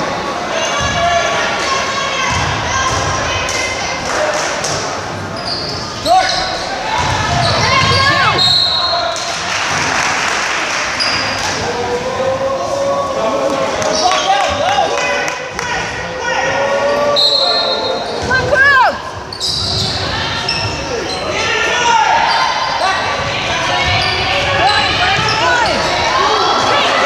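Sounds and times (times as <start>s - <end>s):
crowd shouting in a hall: 0.0s - 27.0s
sneaker squeaks: 5.2s - 9.1s, 11.0s - 11.5s, 17.0s - 26.1s.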